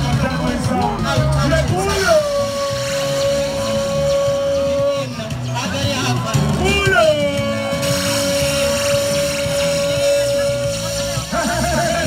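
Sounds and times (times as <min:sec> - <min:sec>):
background music: 0:00.0 - 0:12.0
long high sliding note: 0:01.9 - 0:05.2.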